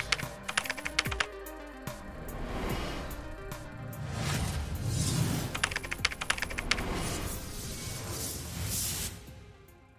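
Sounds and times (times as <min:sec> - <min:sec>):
keyboard keystroke clicks: 0:00.0 - 0:01.3, 0:05.6 - 0:06.8.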